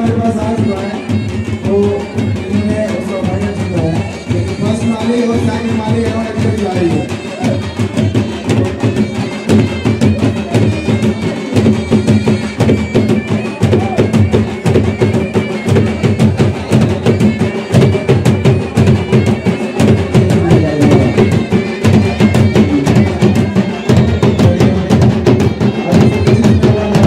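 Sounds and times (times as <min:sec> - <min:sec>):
drums beaten with sticks: 0:00.0 - 0:27.0
reed wind instrument melody: 0:00.0 - 0:27.0.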